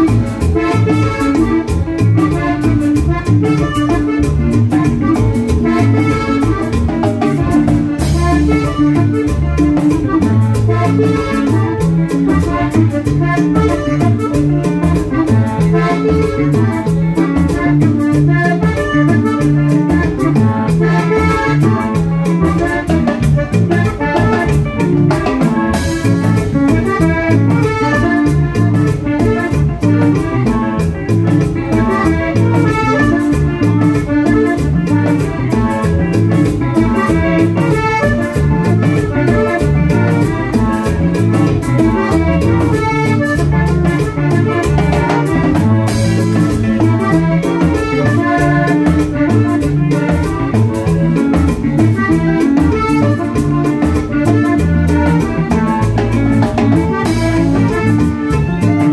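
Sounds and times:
button accordion melody: 0.0 - 58.9
timbales and congas: 0.0 - 58.9.

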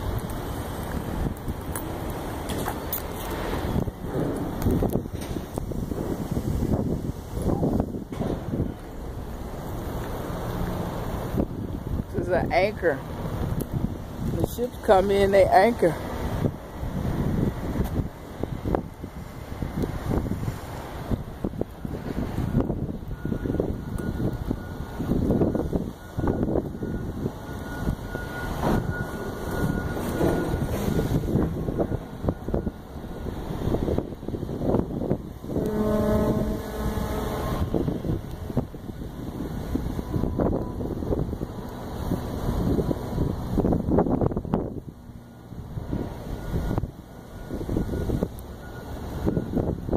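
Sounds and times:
wind buffeting microphone: 0.0 - 49.9
horn steady note: 35.4 - 38.5.

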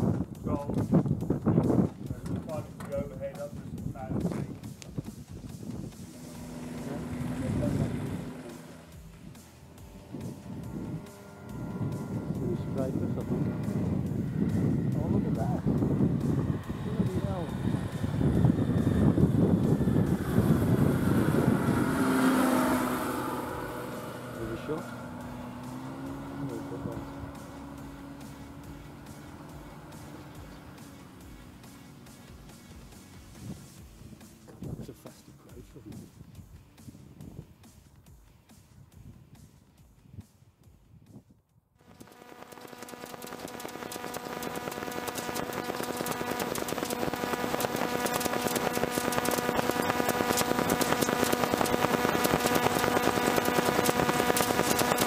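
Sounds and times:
propeller plane passing overhead: 0.0 - 34.8, 41.8 - 55.0.

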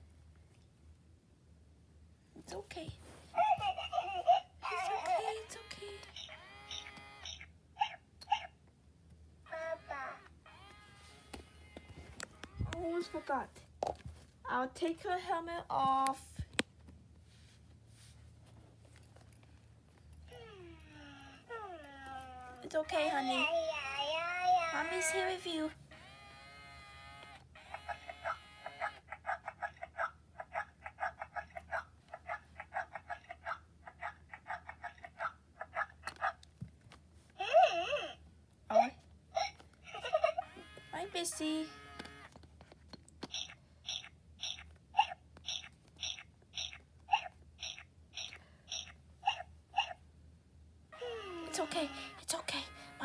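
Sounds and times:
toy doll crying from speaker: 9.5 - 10.9, 20.3 - 26.6, 27.6 - 29.1, 37.4 - 38.2, 50.9 - 53.0.

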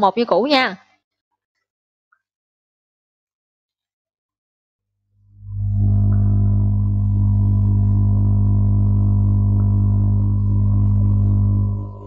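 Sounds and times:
low electronic hum: 5.2 - 12.0.

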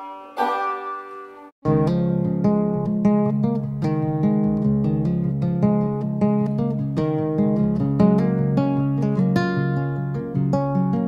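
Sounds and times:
acoustic plucked-string music: 0.4 - 11.0.

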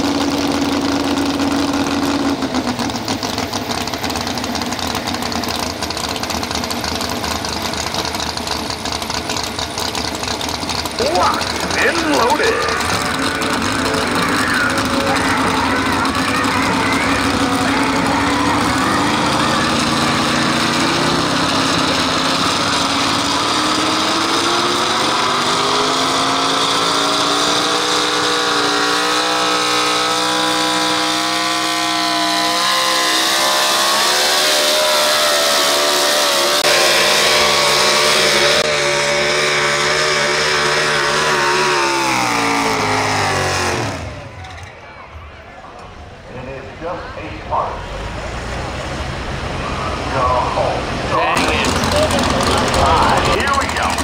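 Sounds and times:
truck engine at full throttle: 0.0 - 54.0.

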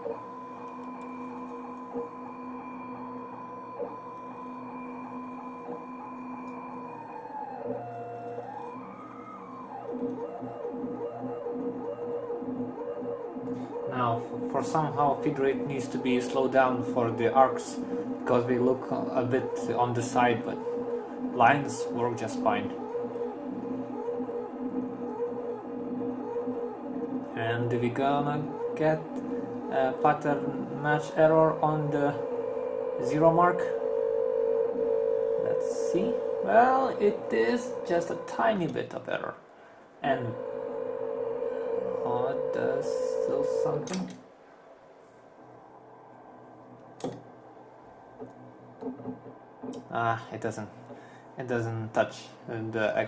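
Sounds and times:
servo motors whining: 0.0 - 38.9, 40.0 - 44.2
steady machine hum: 0.0 - 53.0.

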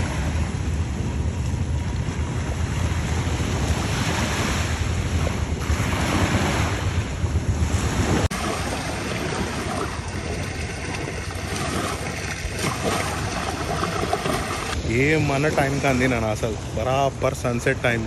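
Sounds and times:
waves washing on sandy beach: 0.0 - 18.0
wind buffeting the microphone: 0.0 - 18.0.

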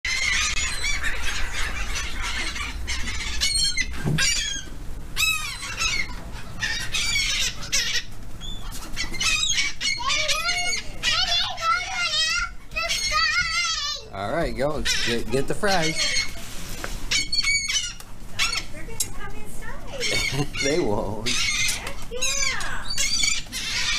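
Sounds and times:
gulls squawking: 0.1 - 23.9.

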